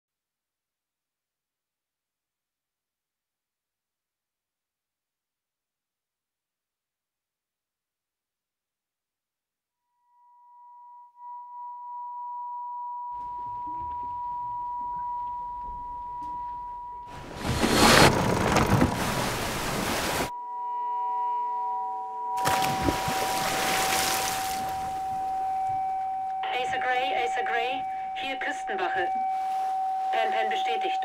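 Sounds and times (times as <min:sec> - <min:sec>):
rushing wind and sea: 0:17.1 - 0:20.3, 0:22.5 - 0:25.8.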